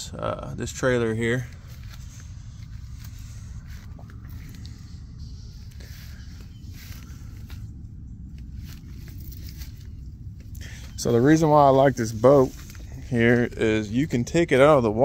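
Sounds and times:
steady low rumble: 0.0 - 15.0
faint footsteps on dirt: 0.3 - 14.5.

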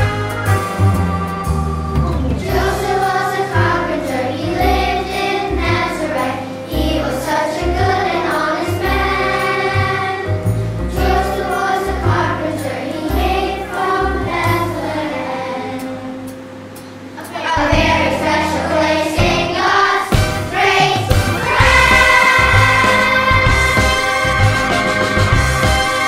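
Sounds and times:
children's choir singing: 0.0 - 16.4, 17.2 - 26.0
instrumental accompaniment with bass: 0.0 - 26.0.

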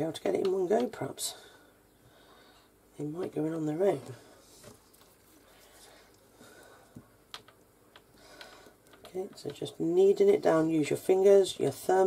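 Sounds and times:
soft clicks: 6.9 - 9.6.

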